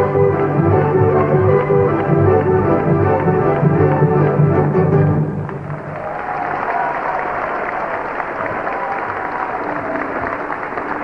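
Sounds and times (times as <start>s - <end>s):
audience applauding: 5.2s - 11.0s.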